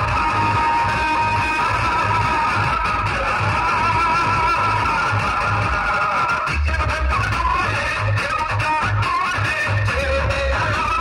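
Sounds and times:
loud music with held melody: 0.0s - 11.0s.

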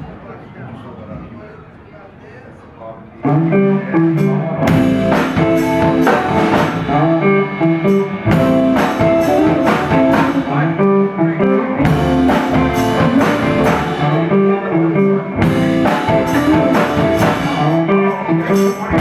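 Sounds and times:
electric guitar riff: 3.2s - 19.0s
live blues band playing: 3.2s - 19.0s
drum and cymbal hits: 4.2s - 10.6s, 11.8s - 14.4s, 15.4s - 19.0s.

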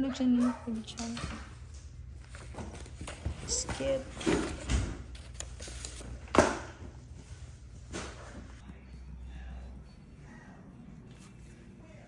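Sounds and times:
paper rustling: 2.2s - 6.2s.

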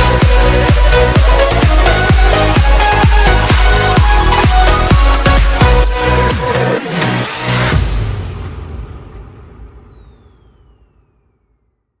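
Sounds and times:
electronic dance music: 0.0s - 9.2s.

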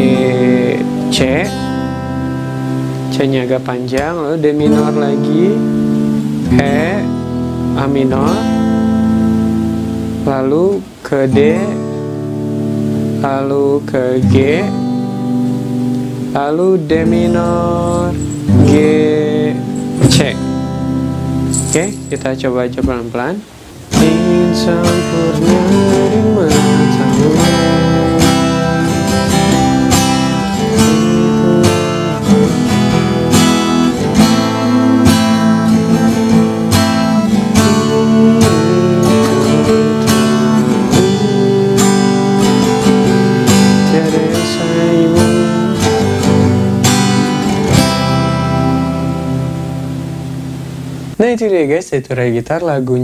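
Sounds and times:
acoustic guitar strumming: 0.0s - 51.4s.

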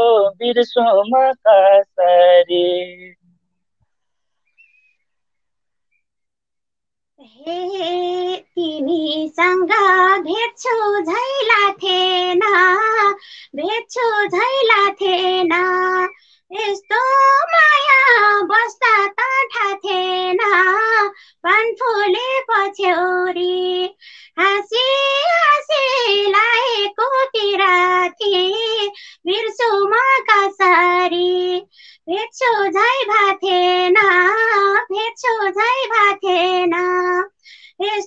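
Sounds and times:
woman singing unaccompanied: 0.0s - 3.2s, 7.2s - 38.0s.

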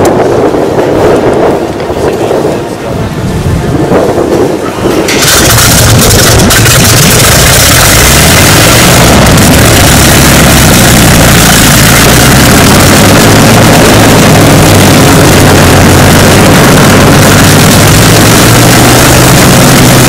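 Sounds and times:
aero engine droning: 0.0s - 20.0s.

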